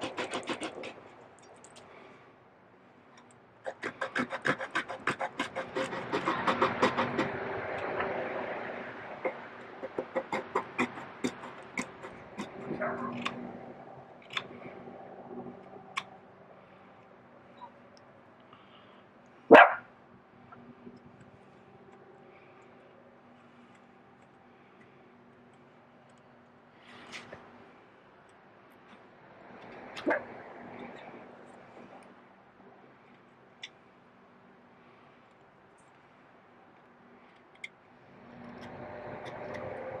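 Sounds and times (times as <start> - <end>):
dog barking: 12.7 - 13.2, 19.5 - 19.9.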